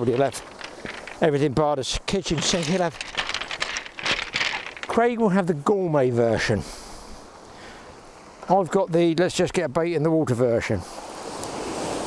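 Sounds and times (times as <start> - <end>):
hand crunching through pebbles: 0.0 - 1.4, 2.2 - 5.0.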